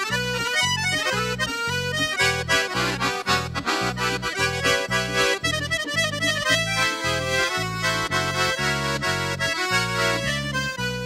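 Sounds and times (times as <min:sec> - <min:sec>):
accordion melody: 0:00.0 - 0:11.0
oom-pah bass: 0:00.0 - 0:11.0.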